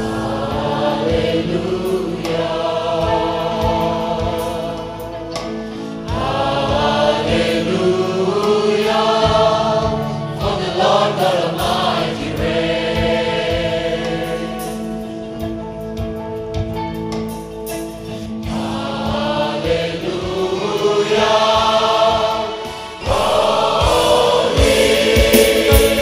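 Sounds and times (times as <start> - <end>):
band with steady drum beat: 0.0 - 7.9, 8.5 - 26.0
choir singing gospel song: 0.0 - 16.1, 18.0 - 26.0.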